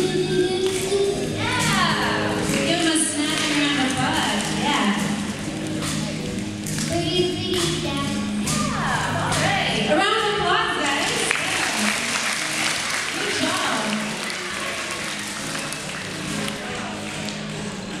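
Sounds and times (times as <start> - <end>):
child scat-singing: 0.0 - 1.8, 6.8 - 8.9
children applauding and cheering: 0.0 - 4.7, 5.8 - 9.6, 10.8 - 18.0.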